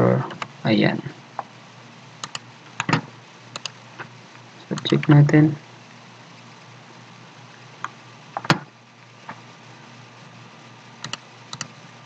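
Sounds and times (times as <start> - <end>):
computer keyboard and mouse clicks: 2.2 - 3.8, 11.0 - 11.8.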